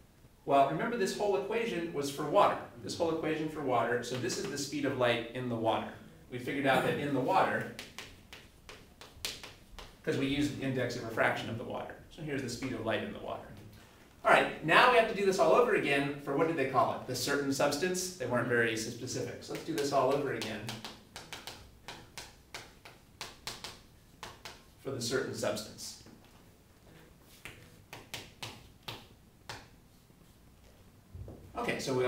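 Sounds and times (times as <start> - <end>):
chalk tapping and scratching: 7.6 - 10.1, 19.5 - 24.8, 26.0 - 30.8.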